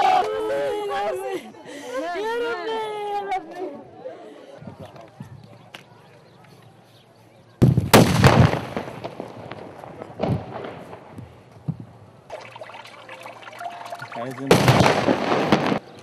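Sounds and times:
gunshots echoing: 0:14.4 - 0:15.9.

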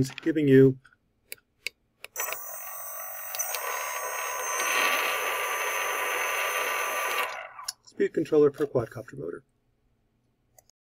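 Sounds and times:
small motor whining: 0:02.2 - 0:07.7.

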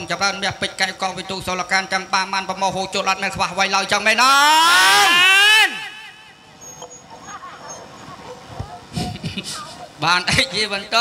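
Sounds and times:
man's loud vocal cry: 0:04.2 - 0:06.4
faint voices: 0:05.0 - 0:11.0.

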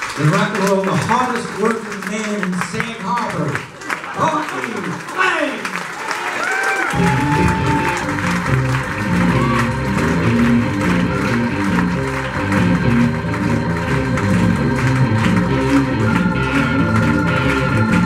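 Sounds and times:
bass: 0:00.0 - 0:03.7, 0:06.9 - 0:18.0
audience applauding: 0:00.0 - 0:18.0
sustained organ chords: 0:07.0 - 0:18.0.

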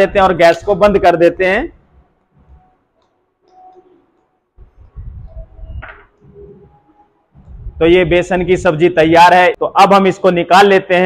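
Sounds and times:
low rumble: 0:07.4 - 0:08.7.

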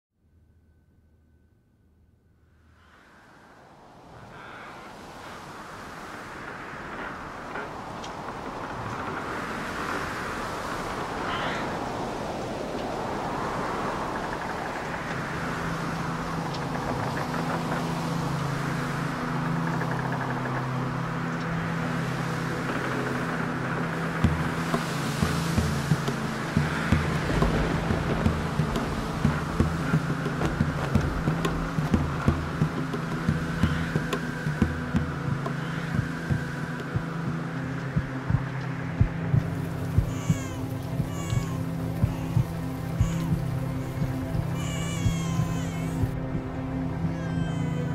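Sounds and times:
rushing noisy wash: 0:02.7 - 0:47.9
steady low drone: 0:11.8 - 0:47.9.

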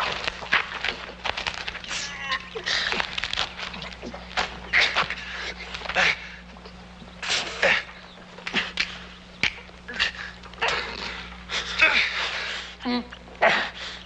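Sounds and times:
grunts and heavy breaths: 0:01.9 - 0:09.1, 0:09.8 - 0:14.0.

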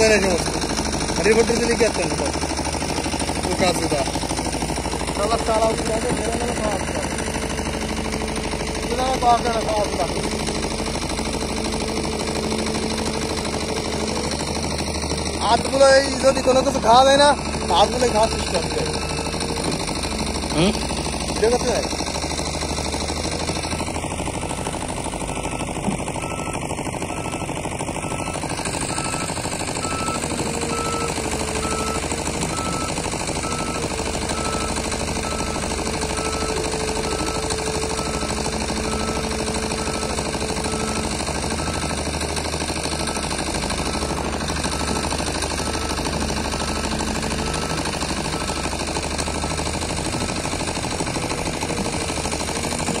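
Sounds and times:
excavator diesel engine clatter: 0:00.0 - 0:53.0
hydraulic whine: 0:00.0 - 0:53.0.

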